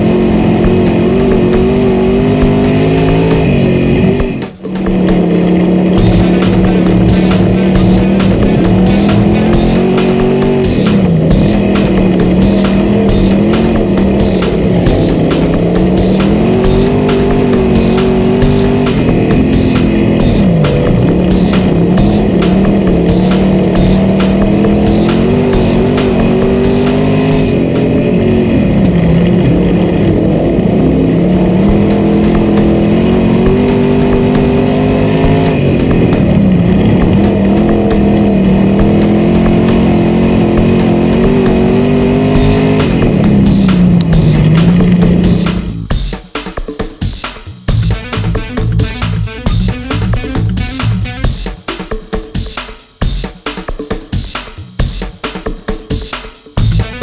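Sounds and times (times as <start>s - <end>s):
race car engine revving: 0.0s - 46.1s, 47.7s - 51.4s.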